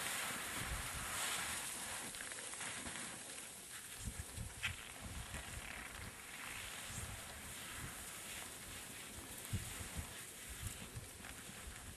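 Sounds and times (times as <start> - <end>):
skis scraping on snow: 0.0 - 11.9.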